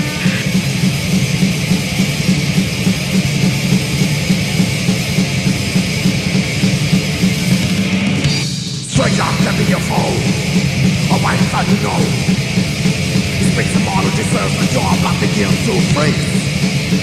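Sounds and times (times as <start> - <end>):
distorted electric guitar riffing: 0.0 - 17.0
driving drums: 0.0 - 17.0.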